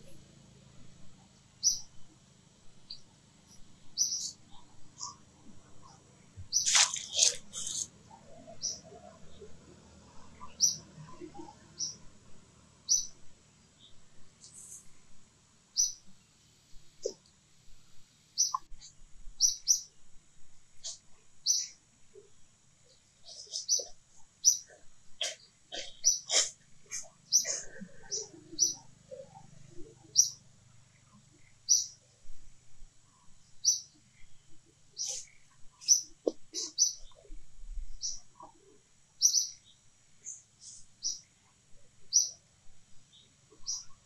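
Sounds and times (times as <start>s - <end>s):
small bird chirping: 1.6s - 2.1s, 2.8s - 12.1s, 12.8s - 15.0s, 15.7s - 17.3s, 18.3s - 20.0s, 20.8s - 32.4s, 33.1s - 44.0s.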